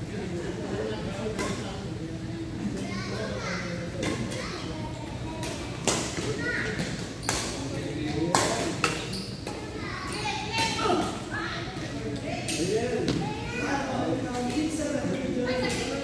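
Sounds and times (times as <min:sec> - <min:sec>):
rackets hitting shuttlecock: 0:08.2 - 0:09.6.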